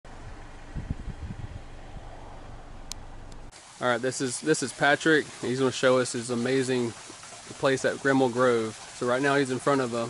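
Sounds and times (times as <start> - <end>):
low hum: 0.0 - 3.5.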